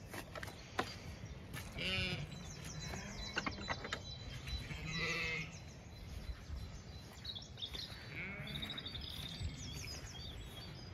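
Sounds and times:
faint birdsong: 0.0 - 10.9
sheep bleating: 1.8 - 2.3, 4.8 - 5.5, 8.0 - 8.7.

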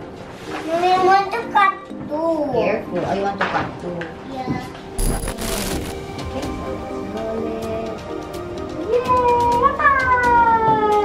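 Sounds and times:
digital glitch static: 5.0 - 6.0.

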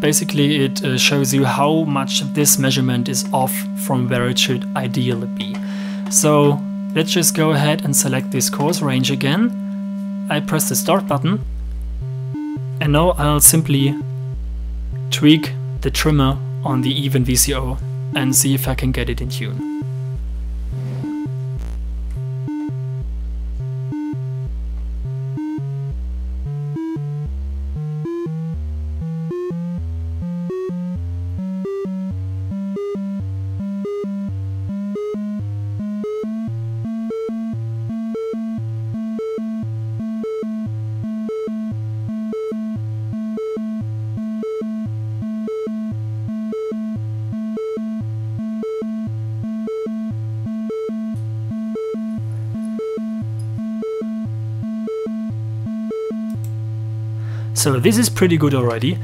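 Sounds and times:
synthesizer triangle wave test notes: 0.0 - 59.0.

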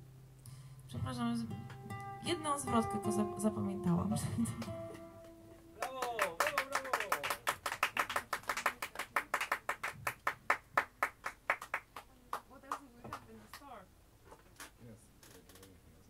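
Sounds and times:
guitar note ringing: 1.3 - 6.2
small audience clapping: 5.8 - 13.8.

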